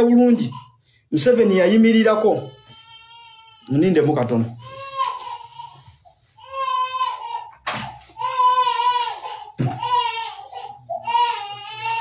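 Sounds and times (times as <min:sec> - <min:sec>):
man speaking: 0:00.0 - 0:02.6, 0:03.7 - 0:04.6
small child crying: 0:04.6 - 0:07.5, 0:08.2 - 0:12.0.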